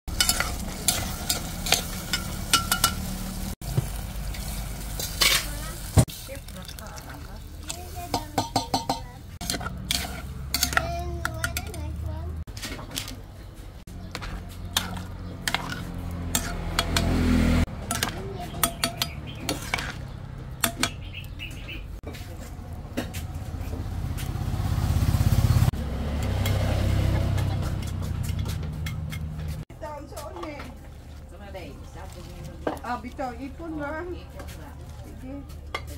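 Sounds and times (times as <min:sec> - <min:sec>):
spatula scraping metal pot: 0:00.1 - 0:03.0, 0:07.6 - 0:11.8, 0:14.0 - 0:21.0
food sizzling: 0:00.1 - 0:12.4.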